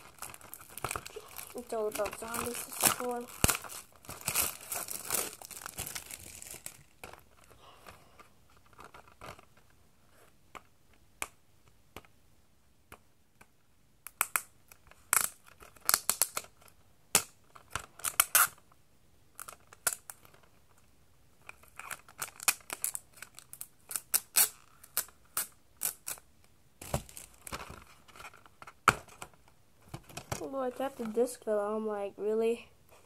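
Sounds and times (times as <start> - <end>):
plastic wrapping crackling: 0.0 - 9.7, 14.7 - 18.6, 21.5 - 26.2, 26.8 - 29.3.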